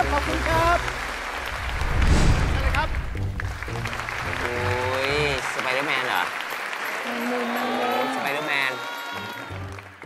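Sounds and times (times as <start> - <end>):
audience applauding: 0.0 - 10.0
show music: 0.4 - 6.6.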